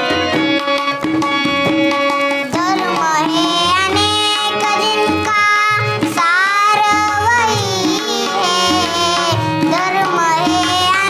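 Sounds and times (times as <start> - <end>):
harmonium held notes: 0.0 - 11.0
tabla strokes: 0.0 - 11.0
girl singing: 2.5 - 11.0.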